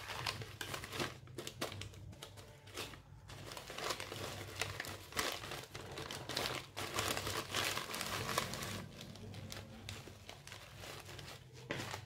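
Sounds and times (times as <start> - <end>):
plastic rustling and crinkling: 0.0 - 12.0.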